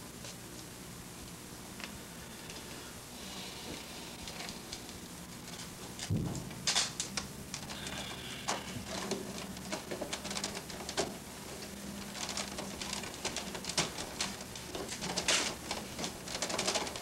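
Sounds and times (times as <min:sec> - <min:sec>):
thump: 0:06.1 - 0:06.6
wood clicks and scrapes: 0:06.7 - 0:17.0.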